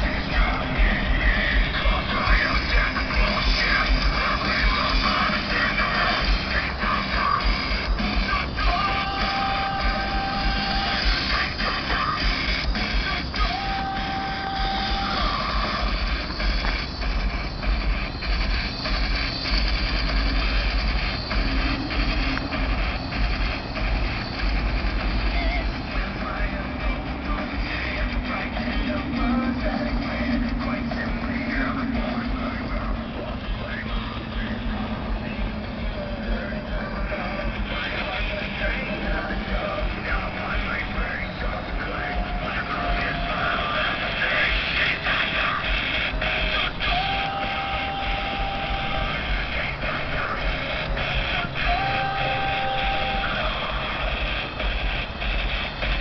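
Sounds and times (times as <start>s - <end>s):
heavy deep bass: 0.0s - 56.0s
loud rock music from car stereo: 0.0s - 56.0s.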